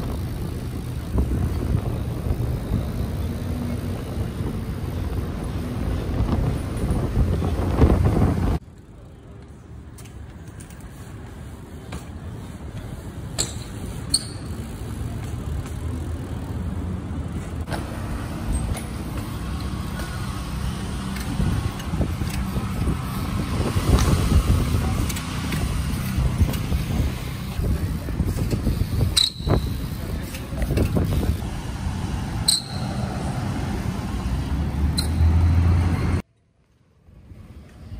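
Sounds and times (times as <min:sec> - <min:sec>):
wind and road noise rumble: 0:00.0 - 0:37.9
short high squeal: 0:13.4 - 0:14.6, 0:29.2 - 0:29.7, 0:32.4 - 0:33.0.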